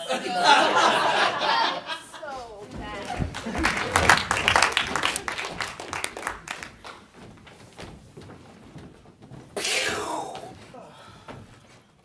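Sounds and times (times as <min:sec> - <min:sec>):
audience laughing and clapping: 0:00.0 - 0:07.0.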